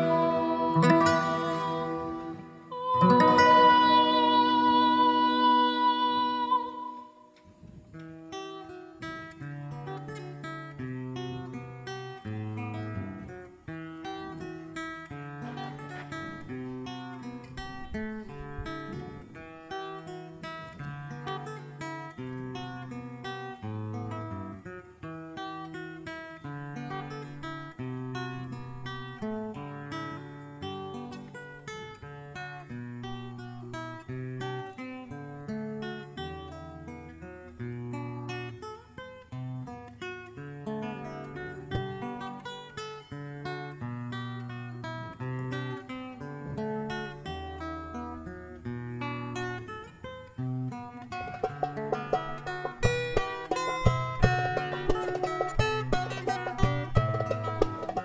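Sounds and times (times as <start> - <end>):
acoustic guitar plucked and strummed: 0.0 - 58.0.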